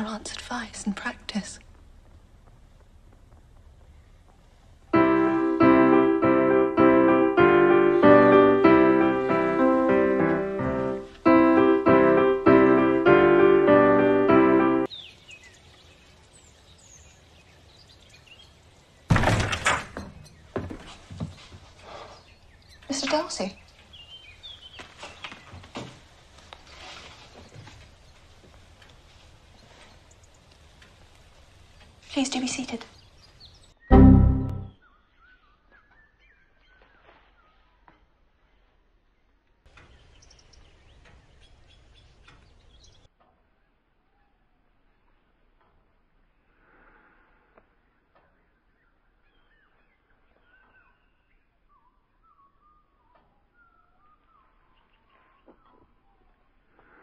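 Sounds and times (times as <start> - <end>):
faint birdsong: 0.0 - 57.0
short loud pitched sound: 33.9 - 34.7
faint high bird chirps: 48.0 - 56.6.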